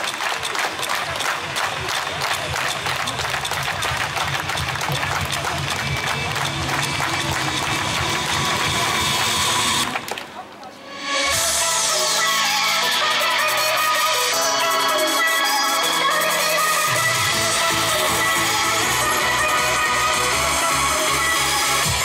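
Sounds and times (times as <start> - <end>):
crowd noise: 0.0 - 22.0
loud amplified music with beat: 2.2 - 10.0, 10.9 - 22.0.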